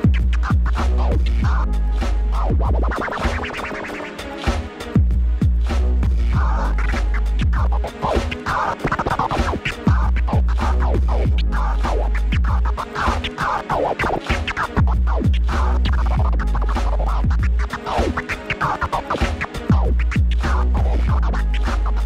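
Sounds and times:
heavy bass line: 0.0s - 3.4s, 4.5s - 8.5s, 9.4s - 13.4s, 14.7s - 17.9s, 19.7s - 22.0s
hip-hop beat: 0.0s - 22.0s
vinyl record scratching: 0.0s - 22.0s.

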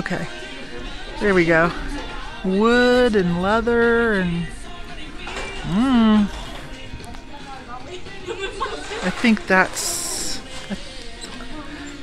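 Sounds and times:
chatter of busy store: 0.0s - 12.0s.

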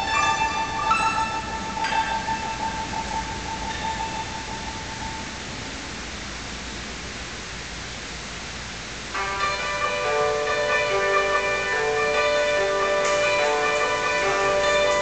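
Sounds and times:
hammered dulcimer ringing notes: 0.0s - 5.4s, 9.2s - 15.0s
faint hiss: 0.0s - 15.0s.

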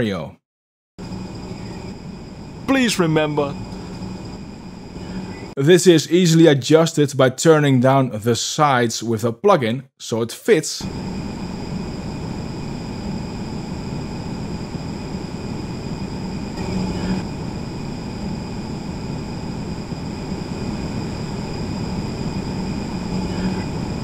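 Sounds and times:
low machine drone: 1.0s - 5.6s, 10.8s - 24.0s
steady whining tones: 1.0s - 5.6s, 10.8s - 24.0s.

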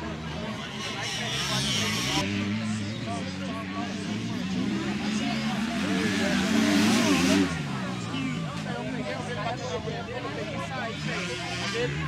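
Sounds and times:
dirt bike engines racing: 0.0s - 12.0s
voices: 0.0s - 12.0s.

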